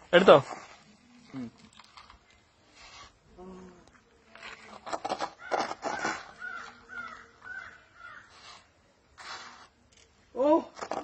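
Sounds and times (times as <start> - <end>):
crow cawing: 5.4 - 8.3.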